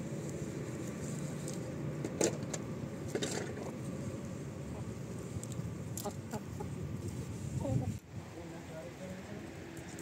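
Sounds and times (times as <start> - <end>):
chickens clucking softly: 6.0 - 6.8.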